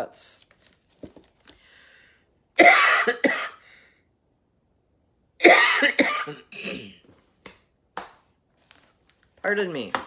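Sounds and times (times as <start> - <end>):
faint breath: 1.5 - 2.4
woman coughing: 2.6 - 3.6, 5.4 - 7.0.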